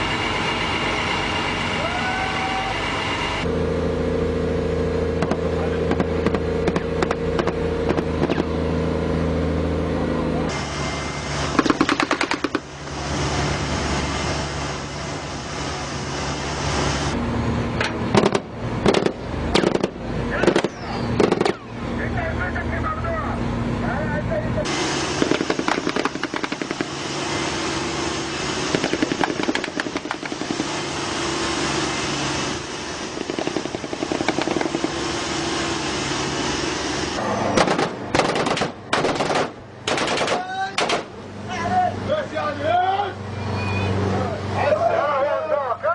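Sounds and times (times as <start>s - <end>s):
engine noise: 0.0s - 45.9s
voices: 20.2s - 24.8s, 40.2s - 45.9s
automatic gunfire: 25.2s - 26.9s, 37.6s - 41.1s.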